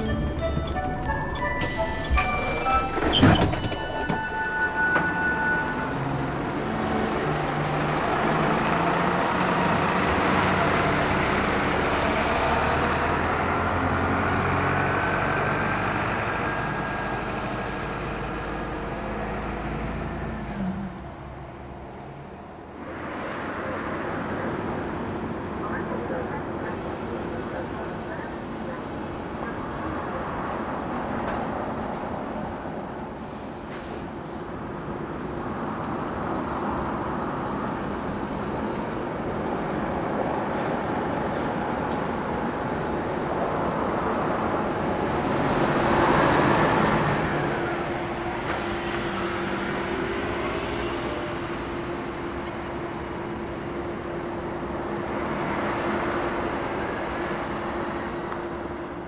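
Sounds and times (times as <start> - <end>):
road traffic passing: 0.0 - 59.0.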